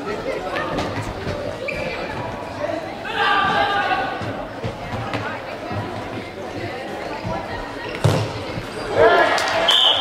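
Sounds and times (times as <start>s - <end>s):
spectators' voices: 0.0s - 10.0s.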